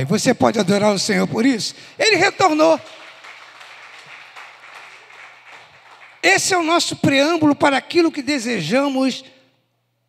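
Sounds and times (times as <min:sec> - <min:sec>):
faint applause: 0:02.8 - 0:06.3.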